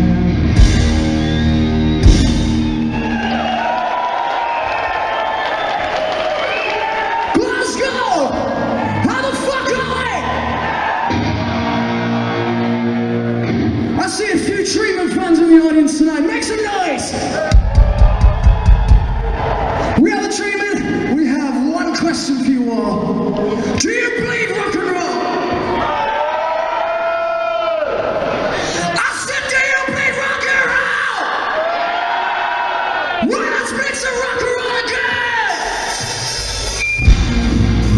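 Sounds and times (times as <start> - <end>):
heavy bass drum beats: 0.0 - 3.0, 17.5 - 19.4, 35.8 - 37.9
live rock band playing: 0.0 - 3.2, 35.6 - 37.9
rock band playing: 0.0 - 3.6, 8.6 - 14.8, 35.5 - 37.9
crowd cheering: 0.0 - 14.5, 16.7 - 20.5, 24.9 - 37.9.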